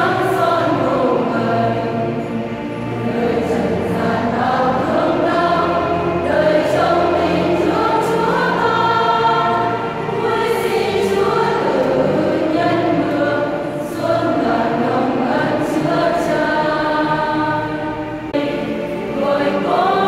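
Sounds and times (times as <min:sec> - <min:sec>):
women's choir singing: 0:00.0 - 0:20.0.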